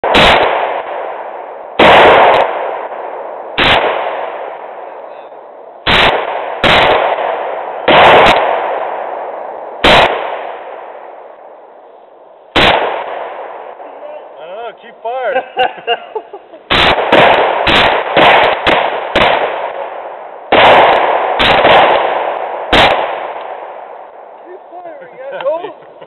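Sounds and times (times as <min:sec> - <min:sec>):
rifle shots with echo: 0:00.0 - 0:11.8, 0:12.5 - 0:14.0, 0:16.7 - 0:24.4.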